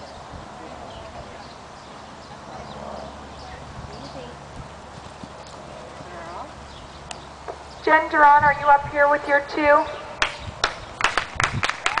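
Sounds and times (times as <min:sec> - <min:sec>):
hands clapping: 0:10.2 - 0:12.0.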